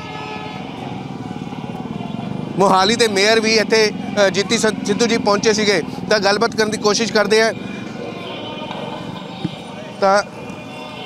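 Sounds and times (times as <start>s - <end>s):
passing traffic: 0.0s - 11.0s
man speaking: 2.6s - 7.6s.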